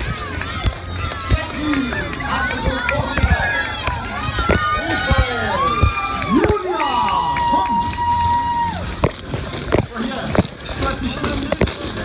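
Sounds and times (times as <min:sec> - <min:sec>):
spectators calling out and cheering: 0:00.0 - 0:12.0
runner's footfalls: 0:08.8 - 0:12.0.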